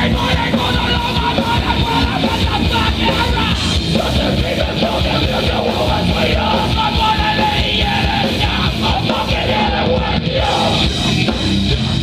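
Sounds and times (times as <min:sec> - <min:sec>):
punk band playing: 0:00.0 - 0:12.0
yelled vocals: 0:00.0 - 0:12.0.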